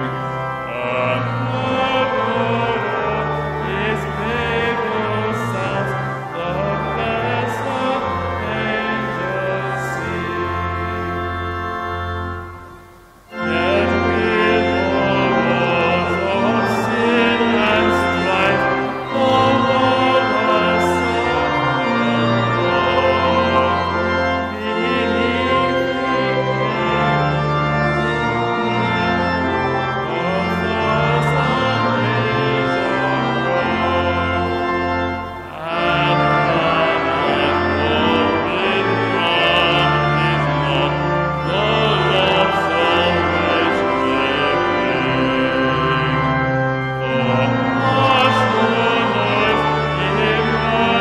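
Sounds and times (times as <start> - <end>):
choir singing a carol: 0.0 - 51.0
pipe organ chords: 0.0 - 51.0.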